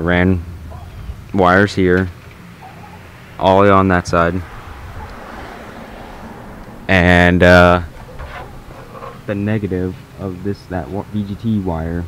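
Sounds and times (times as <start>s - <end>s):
man talking: 1.3s - 2.1s, 3.4s - 4.5s, 6.9s - 7.9s, 9.2s - 12.0s.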